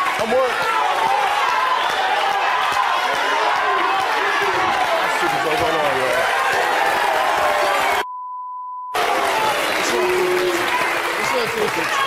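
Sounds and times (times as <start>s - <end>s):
studio audience noise: 0.0s - 8.0s, 8.9s - 12.0s
censor bleep tone: 8.0s - 9.0s.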